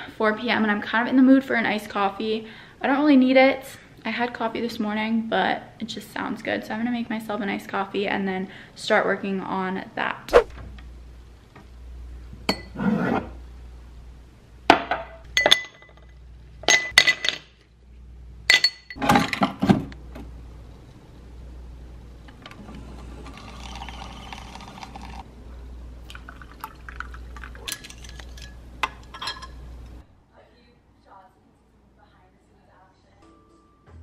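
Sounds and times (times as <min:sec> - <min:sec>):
glassware clinking: 0:15.0 - 0:16.1, 0:16.7 - 0:17.4, 0:18.5 - 0:19.0, 0:26.4 - 0:29.6
coffee maker dispensing coffee: 0:22.3 - 0:25.2.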